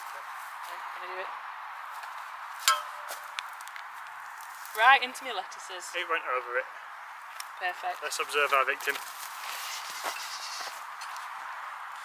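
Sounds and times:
spade blade clack with metallic ring: 2.7 - 3.1.

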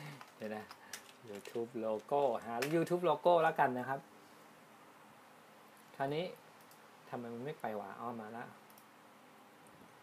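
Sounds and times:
person speaking: 0.0 - 4.1, 5.8 - 8.6
computer mouse clicks: 6.6 - 6.8, 8.7 - 8.9.

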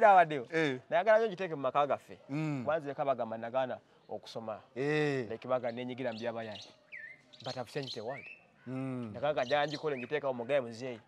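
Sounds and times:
bird chirp: 2.0 - 11.0
man's voice: 7.4 - 11.0.

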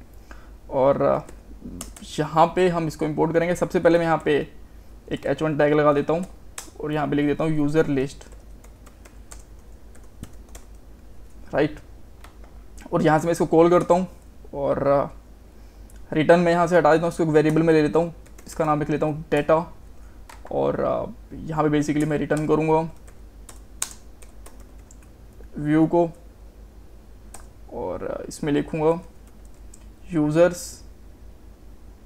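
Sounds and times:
faint keyboard keystrokes: 8.2 - 10.8, 17.4 - 19.5, 22.0 - 25.5.

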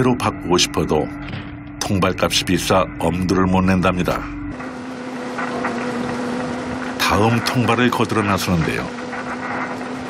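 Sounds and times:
boat engine humming: 0.0 - 10.0
water rushing along hull: 0.0 - 10.0.

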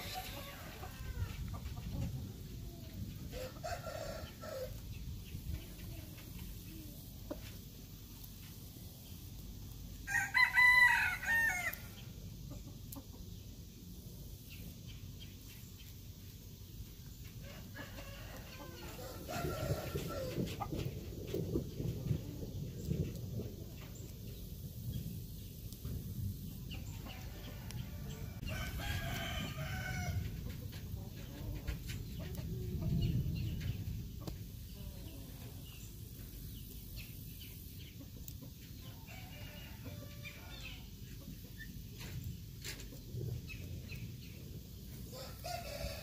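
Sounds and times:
rooster crowing: 3.3 - 4.8, 10.1 - 12.0, 17.5 - 20.5, 27.2 - 30.3, 45.1 - 46.0.

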